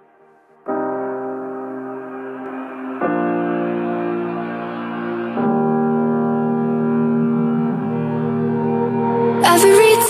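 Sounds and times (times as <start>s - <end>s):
held keyboard chords: 0.0s - 10.0s.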